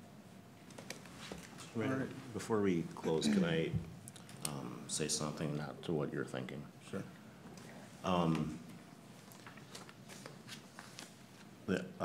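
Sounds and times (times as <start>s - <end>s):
paper rustling and clicks: 9.3s - 11.5s.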